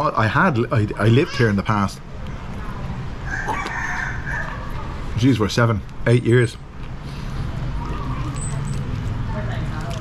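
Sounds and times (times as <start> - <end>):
rooster crowing: 3.2 - 4.8.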